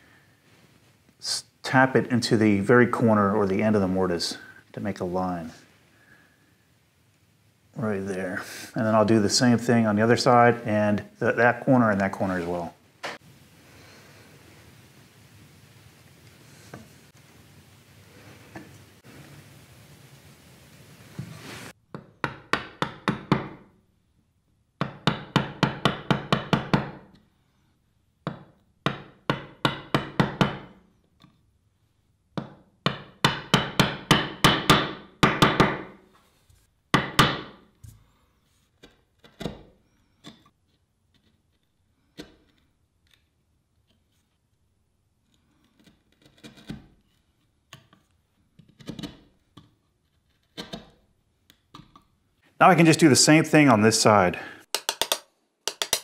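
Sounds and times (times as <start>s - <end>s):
chisel tapping into wood: 54.7s - 56.0s.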